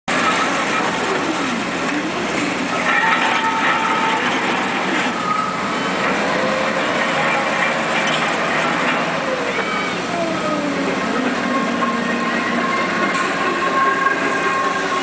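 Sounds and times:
electric shovel motors humming: 0:00.1 - 0:15.0
whining tones: 0:00.1 - 0:15.0.

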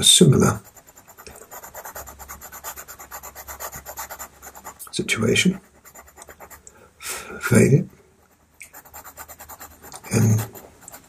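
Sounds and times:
pencil scratching on paper: 0:00.0 - 0:06.6, 0:08.2 - 0:11.0.

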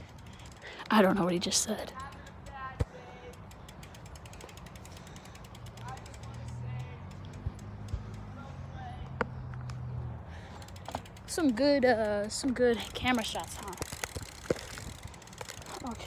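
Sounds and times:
bike hub ticking rapidly: 0:00.0 - 0:08.9, 0:10.3 - 0:16.0.

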